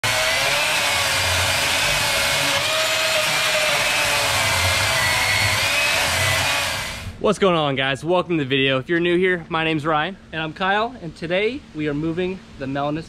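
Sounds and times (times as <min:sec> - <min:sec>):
chainsaw cutting log: 0:00.0 - 0:07.1.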